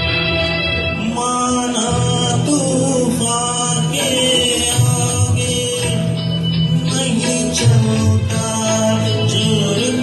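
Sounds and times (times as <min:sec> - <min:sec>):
recorded backing track: 0:00.0 - 0:10.0
man singing into a microphone: 0:00.9 - 0:10.0.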